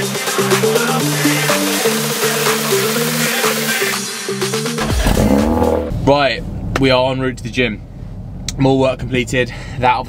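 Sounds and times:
car engine starting and revving: 4.5s - 7.0s.

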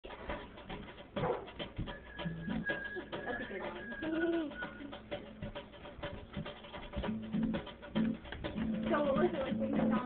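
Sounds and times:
acoustic guitar: 0.1s - 10.0s.

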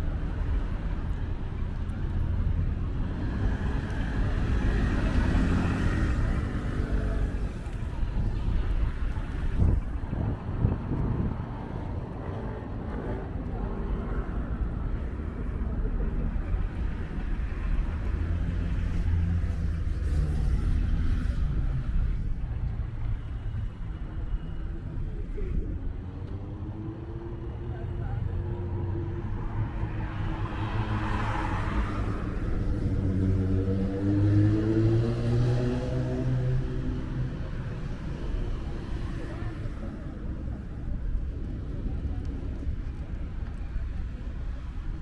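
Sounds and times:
cars passing: 0.0s - 45.0s.

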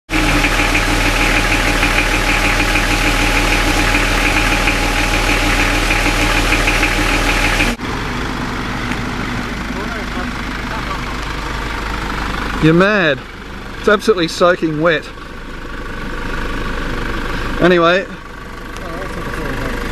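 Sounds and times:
vehicle engine idling: 0.0s - 19.9s.

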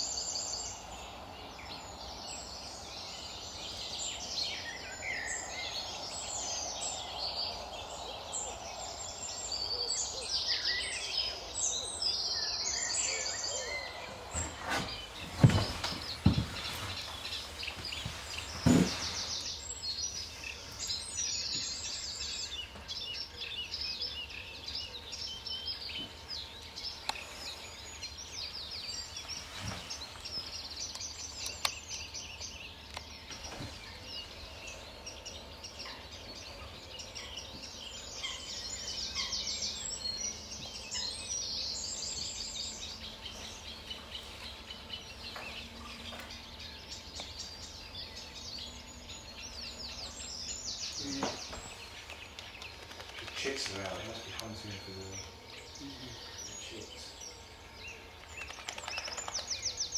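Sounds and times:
songbirds singing: 0.0s - 59.9s.

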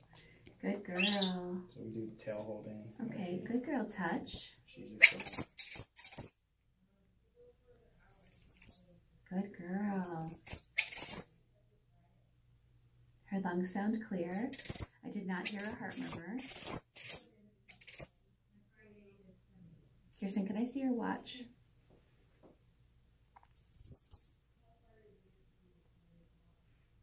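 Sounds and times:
monkey high-pitched chirp: 1.0s - 1.3s, 4.0s - 6.4s, 8.1s - 8.9s, 10.1s - 11.3s, 14.3s - 18.2s, 20.1s - 20.6s, 23.5s - 24.3s.

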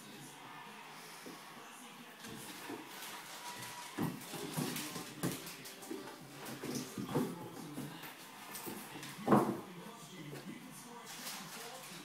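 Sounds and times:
animals scuffling on wooden floor: 2.2s - 9.6s.

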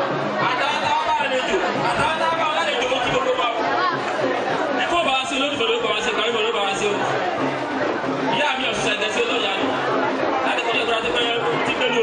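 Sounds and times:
voices chattering: 0.0s - 12.0s
man talking through sound system: 0.4s - 3.8s, 4.7s - 7.2s, 8.3s - 9.8s, 10.4s - 12.0s.

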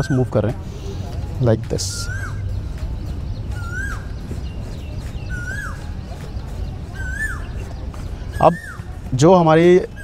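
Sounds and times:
animal whistled call: 3.5s - 4.1s.

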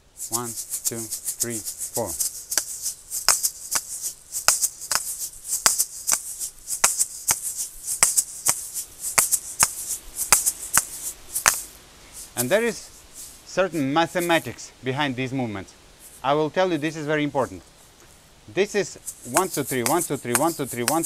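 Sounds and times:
seed rattle: 0.0s - 14.6s, 19.0s - 21.0s
shaker balls clicking together: 0.1s - 14.5s, 19.0s - 21.0s.

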